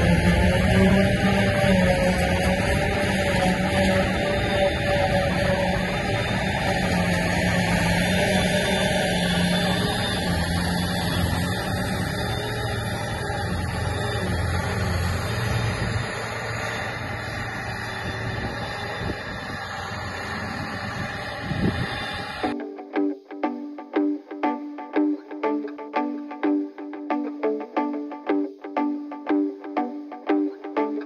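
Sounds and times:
plucked guitar music: 22.4 - 31.0.

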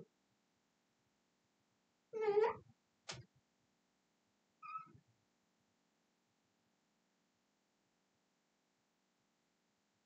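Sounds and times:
marker squeaking on glass: 4.6 - 5.0.

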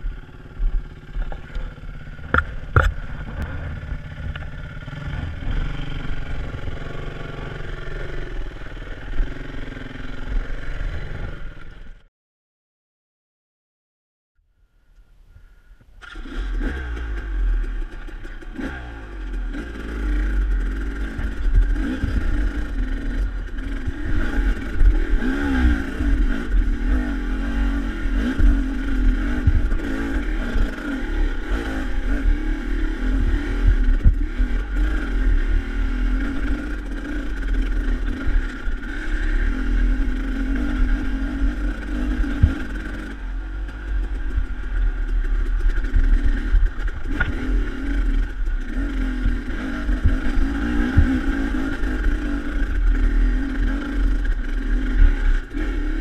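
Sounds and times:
dirt bike engine revving: 0.0 - 11.9, 16.0 - 56.0
low rumble: 0.0 - 12.0, 17.0 - 56.0
knocks from rocky ground: 0.7 - 4.6.

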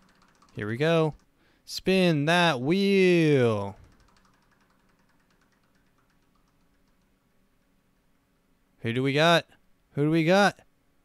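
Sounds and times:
prize wheel ticking: 0.0 - 1.3, 3.3 - 8.2.

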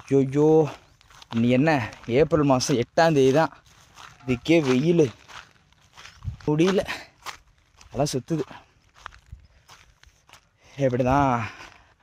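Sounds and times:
man's voice: 0.0 - 5.4, 6.3 - 7.1, 7.9 - 8.7, 10.7 - 11.8
footsteps on dry grass: 0.0 - 12.0.

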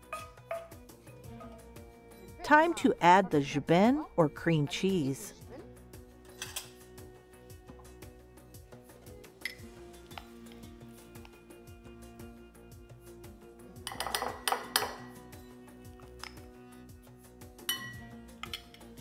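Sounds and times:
metal spoon clinking on glass bowls: 0.0 - 0.8, 13.8 - 15.1, 17.7 - 18.9
soft background music: 0.0 - 19.0.

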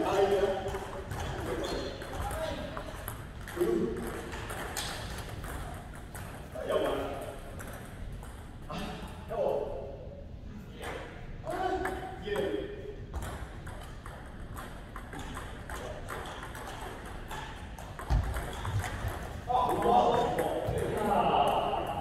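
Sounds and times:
table tennis balls clicking: 0.3 - 8.6, 13.2 - 21.6.

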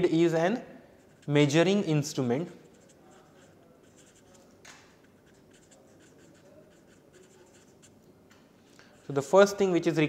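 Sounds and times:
marker scratching on paper: 1.0 - 8.0, 8.8 - 9.4.

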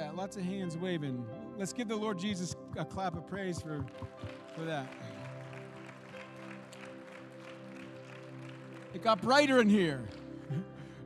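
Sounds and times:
keyboard sustained chord: 0.0 - 11.0
people clapping: 2.8 - 11.0.

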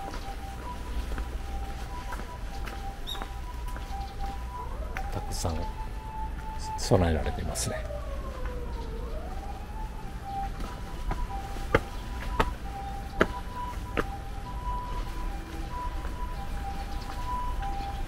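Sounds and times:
emergency vehicle siren: 0.0 - 18.0.

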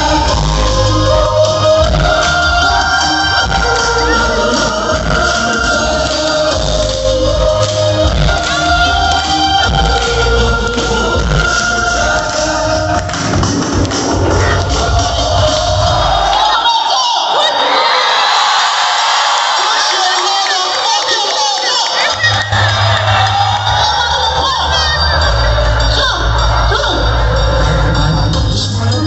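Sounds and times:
crowd cheering and shouting: 0.0 - 29.0
loud electronic music: 0.0 - 29.0.

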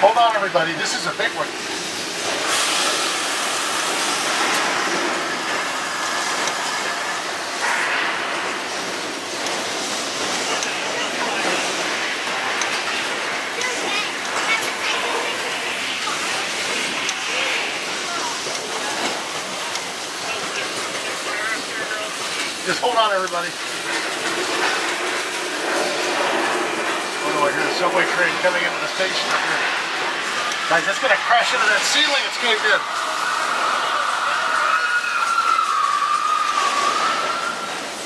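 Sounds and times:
loud rushing and hissing: 0.4 - 38.0.

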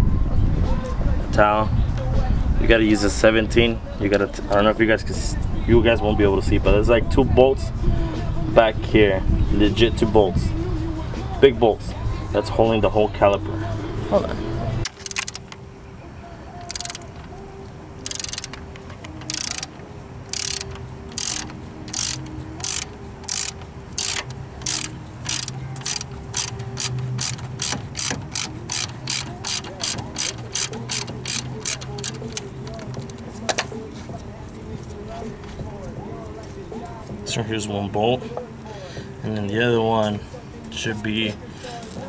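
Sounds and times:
ratchet wrench clicking: 14.8 - 15.6, 16.6 - 17.2, 18.0 - 33.6.

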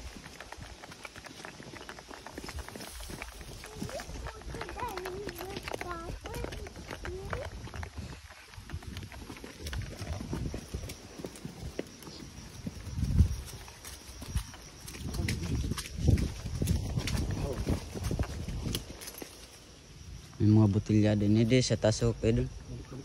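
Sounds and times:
horse hooves on dirt trail: 0.0 - 23.0.

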